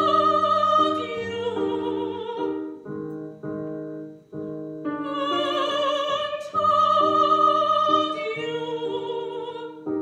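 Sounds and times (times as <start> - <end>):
woman singing operatically: 0.0 - 2.8, 5.0 - 10.0
piano chords: 0.0 - 10.0.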